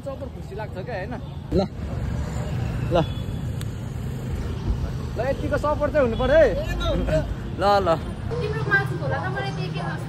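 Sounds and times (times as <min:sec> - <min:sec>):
motorbikes and traffic rumbling: 0:00.0 - 0:10.0.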